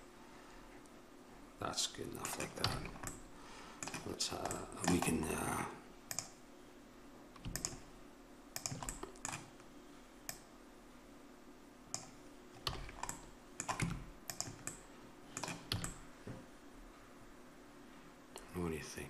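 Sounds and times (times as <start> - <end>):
computer keyboard and mouse clicking: 2.2 - 3.2, 3.8 - 5.3, 6.1 - 6.4, 7.4 - 7.9, 8.5 - 9.7, 10.3 - 10.5, 11.9 - 16.0.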